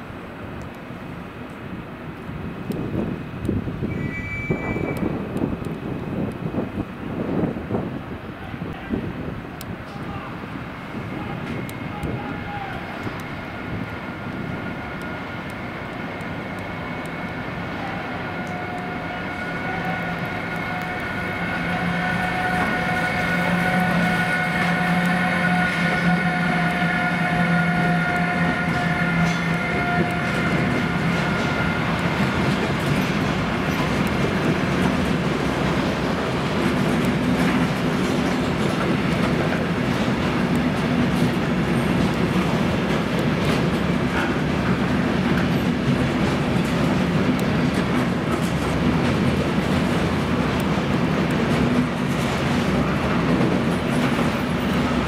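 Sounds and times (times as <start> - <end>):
locomotive whine: 0.0 - 55.0
freight wagons rumbling and clacking: 19.8 - 55.0.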